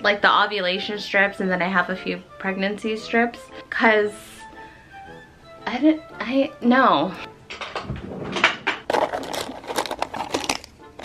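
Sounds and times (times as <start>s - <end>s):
crinkly packet rustling: 8.7s - 11.0s.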